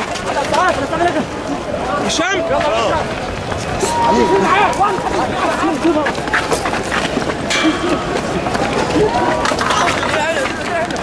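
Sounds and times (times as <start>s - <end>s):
footsteps and jostling: 0.0s - 11.0s
men shouting: 3.8s - 6.0s.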